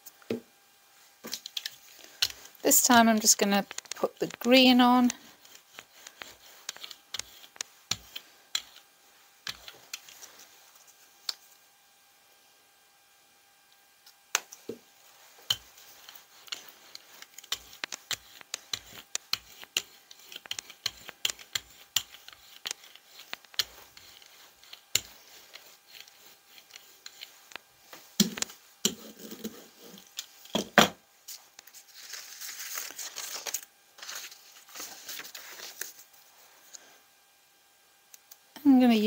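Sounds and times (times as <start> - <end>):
brayer crackling over paint: 1.3 - 8.8, 14.5 - 30.4.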